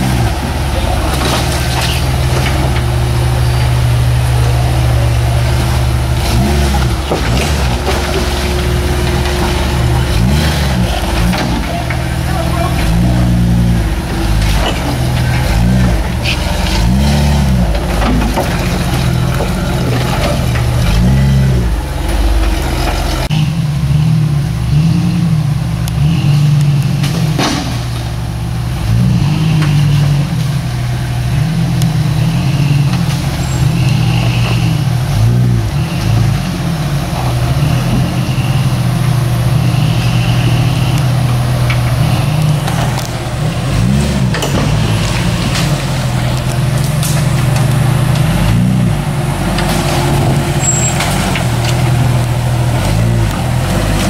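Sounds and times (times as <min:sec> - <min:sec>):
engine revving in surges: 0:00.0 - 0:54.0.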